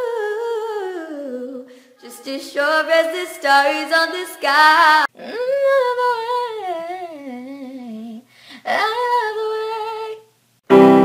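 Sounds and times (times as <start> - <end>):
boy singing without words: 0.0 - 10.3.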